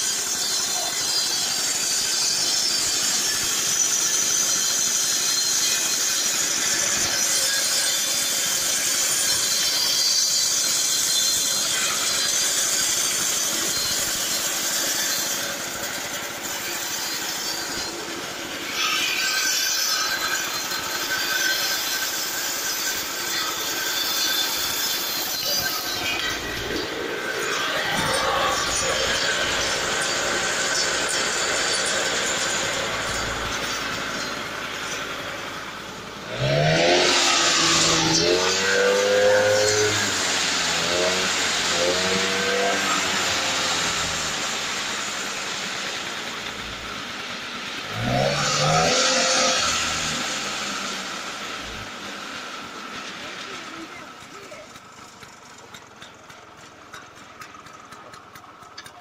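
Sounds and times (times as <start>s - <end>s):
high saw whine: 0.0s - 59.0s
scooter engine driving saw blade: 0.0s - 59.0s.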